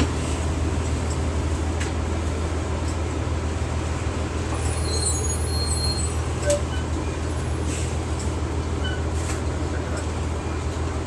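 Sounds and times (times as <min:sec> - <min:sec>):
bus engine drone: 0:00.0 - 0:11.0
road and body noise: 0:00.0 - 0:11.0.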